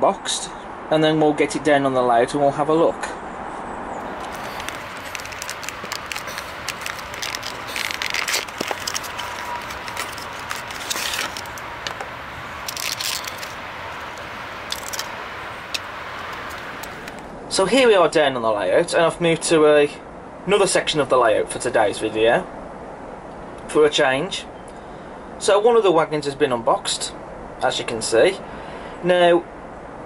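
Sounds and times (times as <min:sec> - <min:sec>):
plastic packaging crackling: 0:04.0 - 0:17.3
plastic scraping against card: 0:04.0 - 0:17.3.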